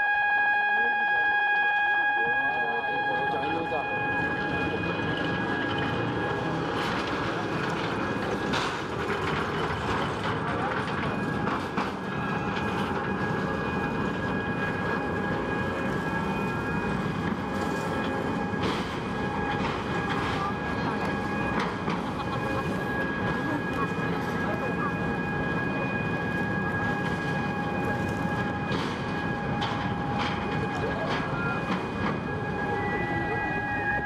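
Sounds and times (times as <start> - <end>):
crowd chatter: 0.6 - 34.0.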